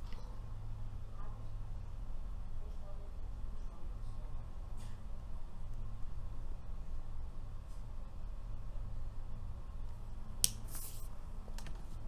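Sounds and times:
low steady hum: 0.0 - 12.0
soft rustle: 10.7 - 11.2.

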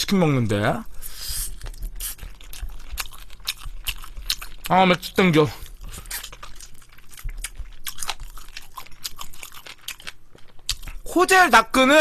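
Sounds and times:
crunchy chewing of fried chicken: 0.9 - 11.1.

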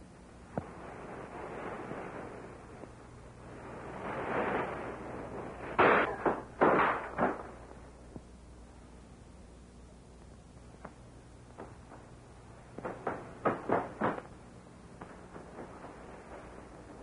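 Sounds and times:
rushing noise: 0.7 - 6.1
loud bangs: 5.3 - 7.7.

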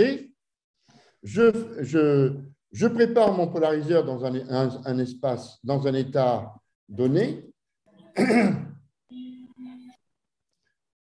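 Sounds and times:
man clearing throat: 8.1 - 8.8.

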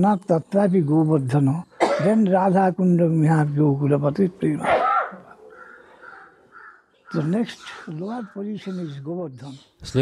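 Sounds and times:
crows cawing: 4.4 - 9.6.

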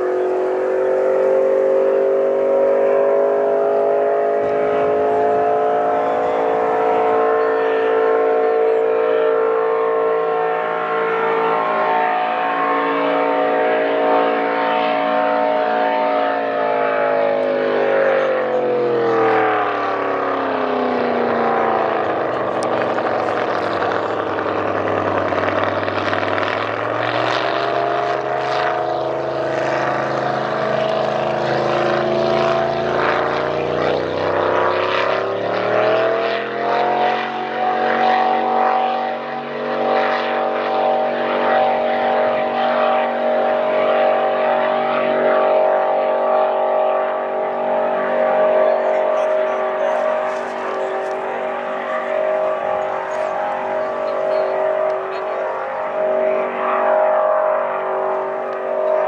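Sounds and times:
race boat engine running hard: 0.0 - 59.0.

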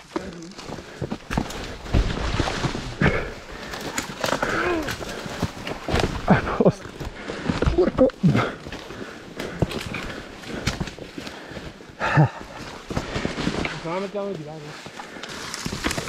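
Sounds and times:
branches snapping: 0.0 - 11.6, 14.9 - 16.0
footsteps: 0.0 - 16.0
person grunting with effort: 2.9 - 3.4, 4.3 - 5.3, 7.6 - 8.6
rustling through dry leaves: 12.6 - 16.0.

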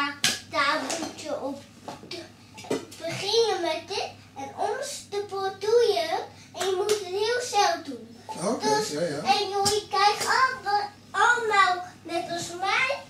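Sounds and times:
sharp hand claps: 6.6 - 7.1, 9.6 - 10.4.

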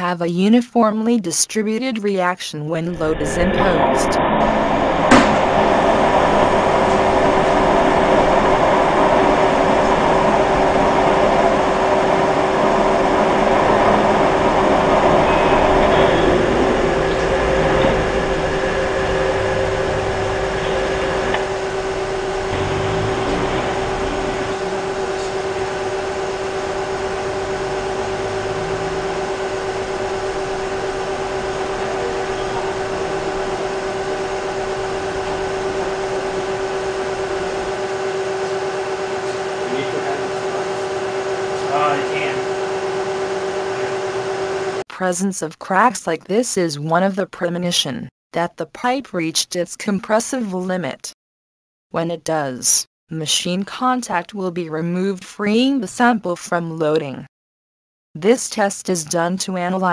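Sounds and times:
testing machine humming: 0.0 - 45.9.

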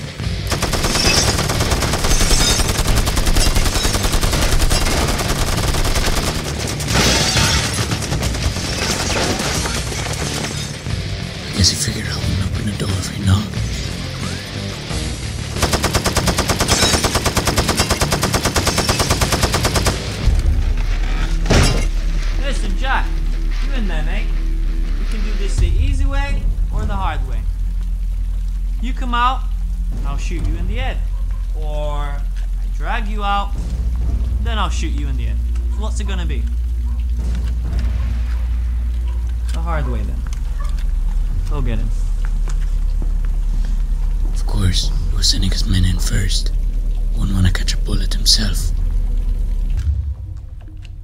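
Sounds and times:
low music drone: 0.0 - 51.0
automatic gunfire: 0.5 - 6.6, 15.6 - 20.2
steady rain falling: 22.0 - 51.0.

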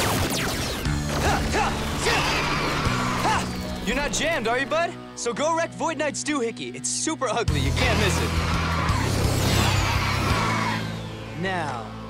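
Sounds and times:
action music score: 0.0 - 12.0.

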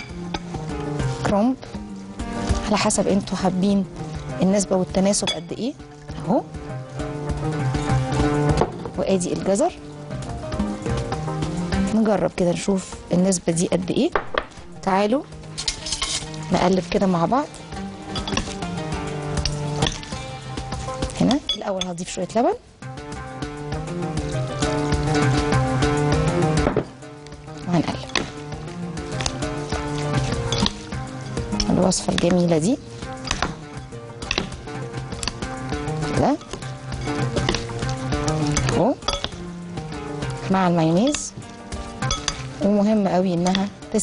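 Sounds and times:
background music: 0.0 - 44.0
spoon stirring wet salad: 15.5 - 21.9, 27.2 - 43.8
fork clinking against glass bowl: 18.2 - 18.6, 30.5 - 30.8, 34.2 - 34.5, 38.4 - 39.4, 42.0 - 42.6
spoon clicking on glass: 38.5 - 39.4, 42.0 - 42.5.

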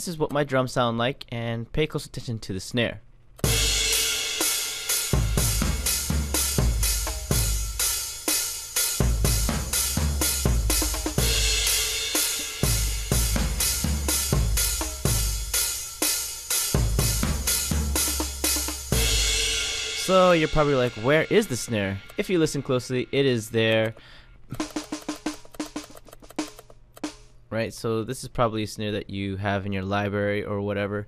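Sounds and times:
cymbals: 3.4 - 23.6
hi-hat pattern: 3.4 - 27.5
kick drums: 12.6 - 15.5.

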